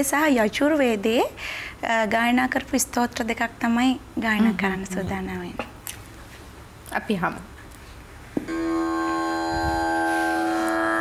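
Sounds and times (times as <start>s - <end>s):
steady drone with overtones: 8.5s - 11.0s.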